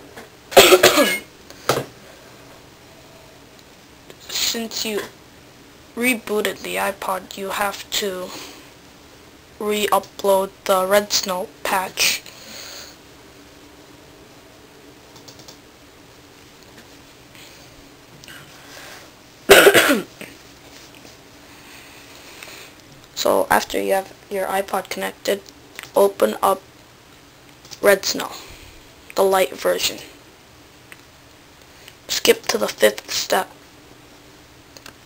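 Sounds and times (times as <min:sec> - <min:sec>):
faint steady hum: 0:00.0 - 0:35.0
person coughing loudly: 0:00.5 - 0:01.3, 0:19.5 - 0:20.3
computer input clicks: 0:15.1 - 0:15.6.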